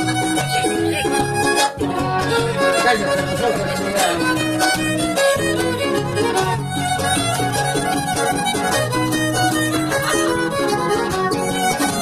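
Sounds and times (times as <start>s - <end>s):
strummed guitar: 0.0s - 12.0s
violin melody: 0.0s - 12.0s.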